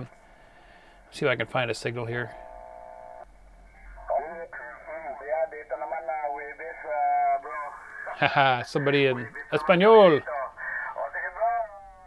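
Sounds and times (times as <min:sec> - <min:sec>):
person speaking over radio speaker: 0:03.9 - 0:12.0.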